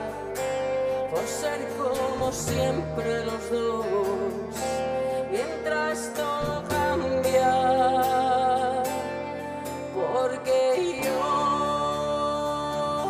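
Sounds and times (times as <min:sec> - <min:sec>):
guitar: 0:00.0 - 0:13.0
live pop-rock band playing: 0:00.0 - 0:13.0.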